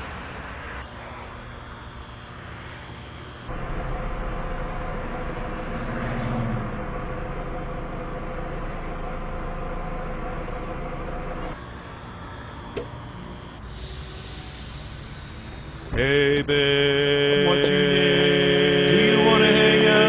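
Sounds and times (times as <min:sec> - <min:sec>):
machine whirring: 0:03.5 - 0:20.0.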